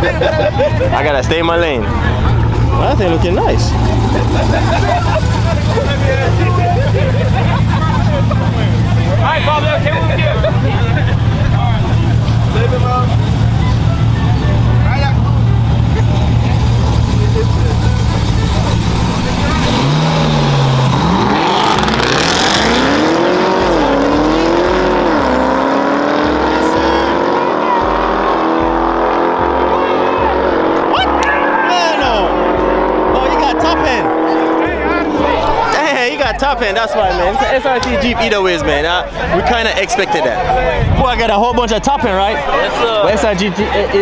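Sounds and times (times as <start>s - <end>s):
car engines accelerating: 0.0s - 44.0s.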